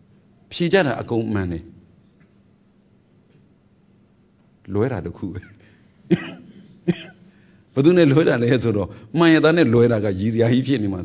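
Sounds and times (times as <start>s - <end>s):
man coughing: 5.4s - 7.4s
man speaking: 7.8s - 11.0s.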